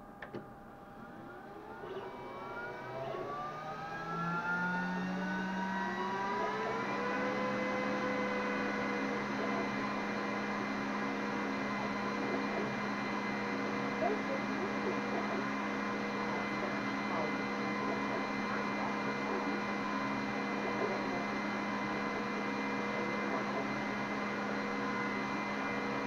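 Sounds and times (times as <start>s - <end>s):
laser cutter fans whining: 0.0s - 26.0s.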